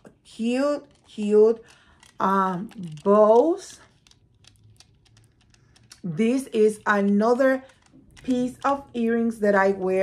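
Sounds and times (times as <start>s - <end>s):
jewelry clicking: 0.0s - 9.9s.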